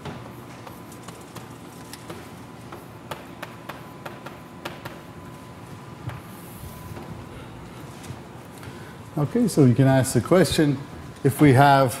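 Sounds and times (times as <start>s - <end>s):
chalk tapping on blackboard: 0.0s - 5.1s.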